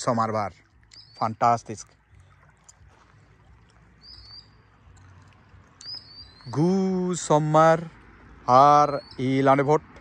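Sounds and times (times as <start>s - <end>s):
small bird whistled call: 0.9s - 1.2s, 4.0s - 4.6s, 5.8s - 6.6s.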